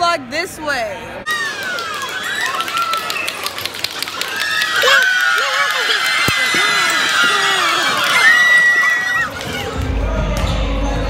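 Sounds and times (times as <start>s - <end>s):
people whooping and shouting: 1.3s - 10.0s.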